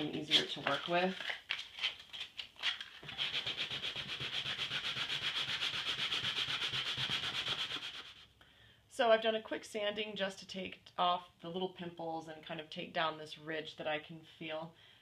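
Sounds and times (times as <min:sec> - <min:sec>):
sandpaper rubbing: 0:02.7 - 0:08.2.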